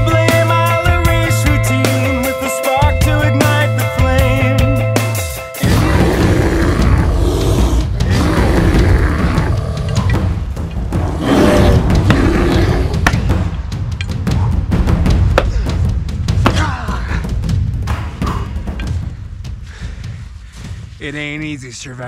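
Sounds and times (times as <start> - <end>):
music: 0.0 - 22.0
bear roaring and growling: 5.6 - 13.5.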